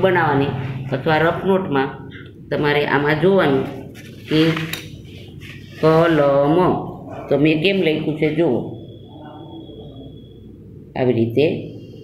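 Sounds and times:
person speaking: 0.0 - 10.2.

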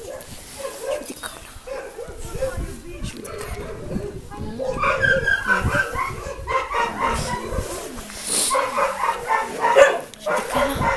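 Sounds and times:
dog yelping: 4.6 - 7.7, 8.5 - 10.9.

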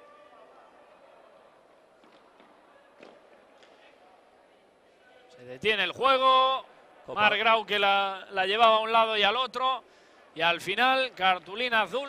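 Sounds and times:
faint arena ambience: 0.0 - 12.0.

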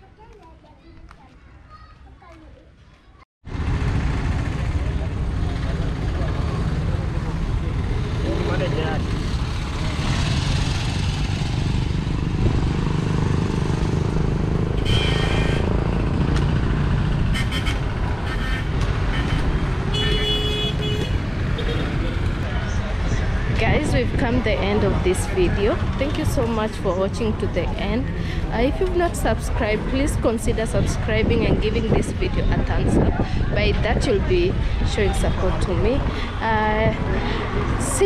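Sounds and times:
traffic rumble: 0.0 - 38.0
vehicle horn toots: 14.8 - 15.8, 17.3 - 21.8.

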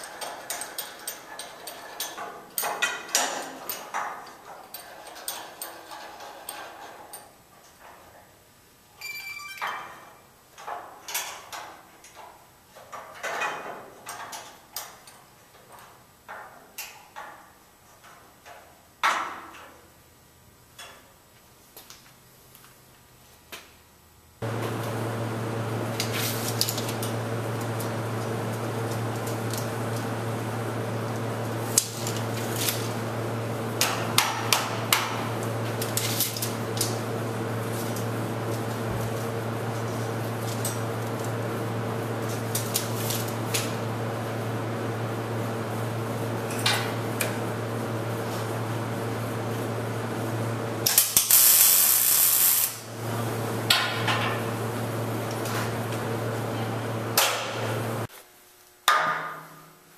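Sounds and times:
shop machinery hum: 24.4 - 58.2.

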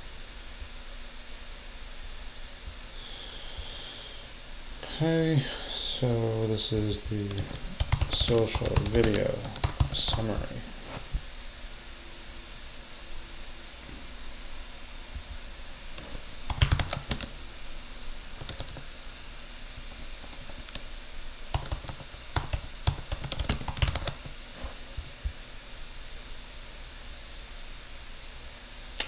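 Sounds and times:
typing on computer keyboard: 7.8 - 10.3, 16.5 - 17.3, 18.4 - 18.8, 21.5 - 24.3.

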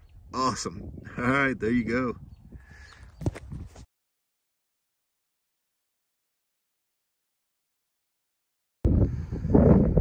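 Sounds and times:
wind buffeting microphone: 0.0 - 3.9, 8.8 - 10.0.

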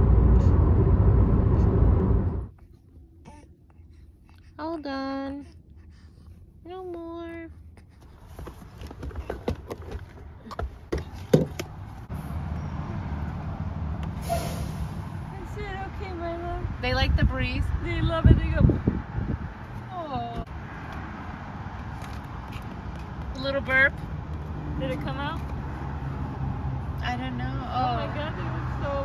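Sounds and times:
wind rumble on microphone: 0.0 - 2.5, 15.3 - 20.5
low rumble: 0.0 - 2.6.

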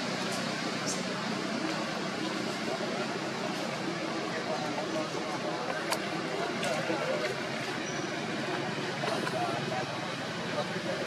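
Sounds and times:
background chatter of voices: 0.0 - 11.0
steady outdoor hum: 0.0 - 11.0.

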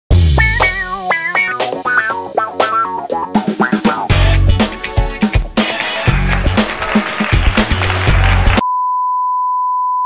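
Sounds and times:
upbeat music with drum beat: 0.1 - 8.6.

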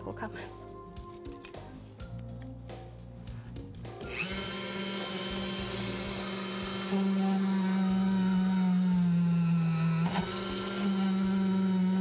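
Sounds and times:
electric drill whining: 4.0 - 12.0.

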